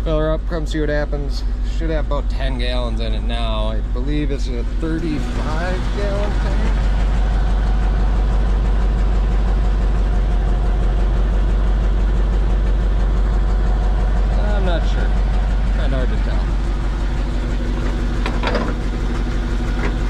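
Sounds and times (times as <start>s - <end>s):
truck engine idling: 0.0s - 20.0s.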